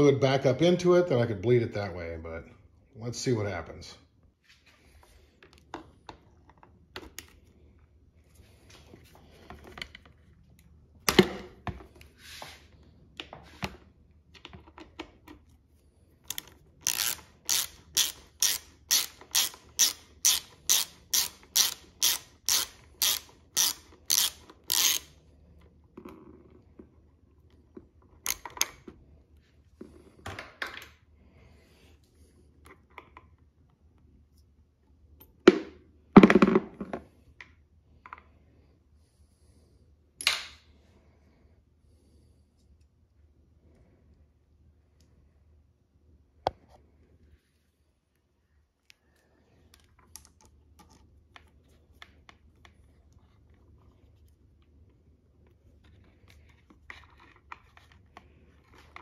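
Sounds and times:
tool clicks: 16.2 - 25.1
ratchet wrench clicking: 16.3 - 25.1.

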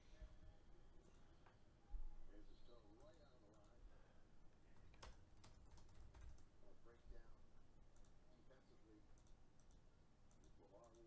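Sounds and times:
typing on computer keyboard: 4.8 - 6.5, 9.2 - 11.0.

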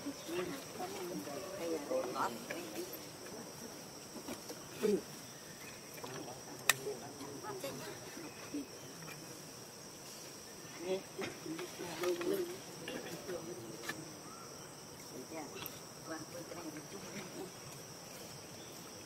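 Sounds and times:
insect chorus droning: 0.0 - 19.0.

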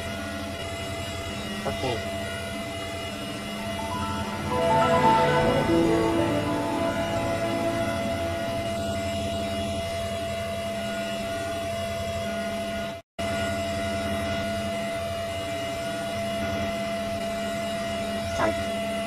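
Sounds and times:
electronic drone: 0.0 - 11.9.

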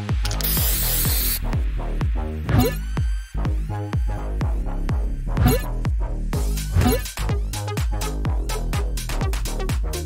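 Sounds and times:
electronic music with beat: 0.0 - 10.0
spray paint can hissing: 0.3 - 1.4.

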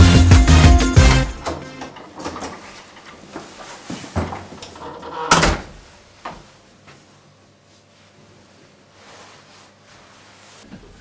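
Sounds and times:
wooden door banging shut: 5.2 - 5.8.

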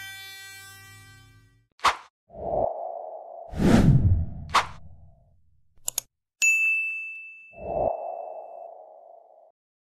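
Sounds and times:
bright bell-like ding: 6.4 - 7.6.

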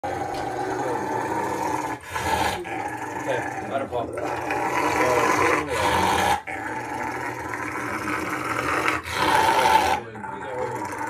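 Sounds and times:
dog growling: 0.0 - 11.0.

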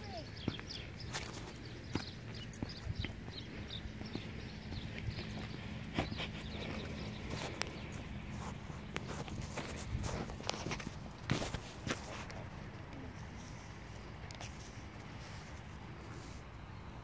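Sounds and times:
footsteps on a path: 0.0 - 16.6.

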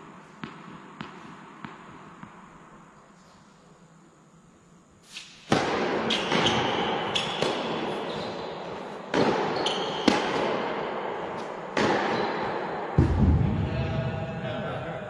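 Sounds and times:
tennis ball bouncing on court: 0.4 - 2.4, 5.5 - 10.7, 11.3 - 13.3
tennis racket strikes: 5.1 - 13.2.

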